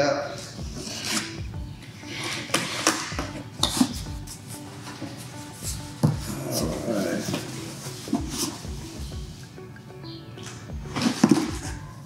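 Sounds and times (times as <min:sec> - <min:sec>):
box cutter slitting tape: 0:00.8 - 0:01.4, 0:02.2 - 0:04.0.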